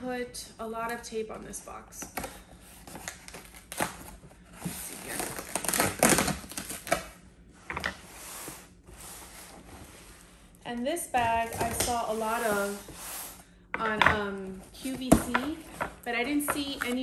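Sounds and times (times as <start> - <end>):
packing tape crinkling and ripping: 2.0 - 4.2, 4.8 - 7.2.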